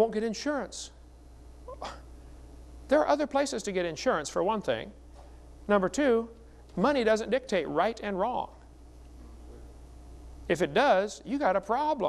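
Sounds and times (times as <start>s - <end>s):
steady low hum: 0.0s - 12.0s
person speaking: 2.9s - 9.8s.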